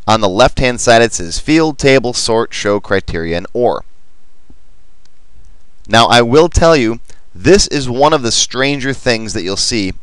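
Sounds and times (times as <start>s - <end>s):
man speaking: 0.0s - 3.9s, 5.9s - 10.0s.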